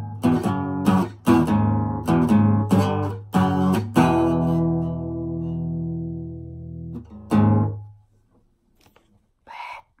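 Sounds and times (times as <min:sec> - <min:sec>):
short breathy burst: 0:09.5 - 0:10.0.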